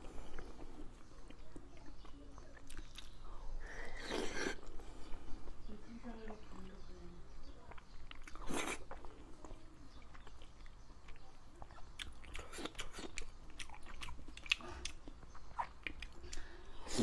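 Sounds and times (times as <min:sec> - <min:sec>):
person chewing mushrooms: 0:00.0 - 0:05.6, 0:07.7 - 0:17.0
mouth clicks and smacks: 0:00.4 - 0:03.3, 0:10.0 - 0:17.0.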